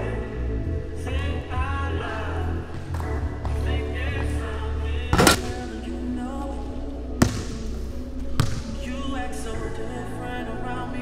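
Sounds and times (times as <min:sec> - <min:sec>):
basketball net swish: 0:05.2 - 0:05.8
ball bouncing on wooden floor: 0:07.2 - 0:07.6, 0:08.4 - 0:08.8.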